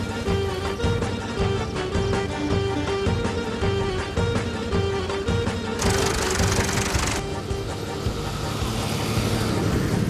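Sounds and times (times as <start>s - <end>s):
background music: 0.0s - 10.0s
tractor running: 5.7s - 10.0s.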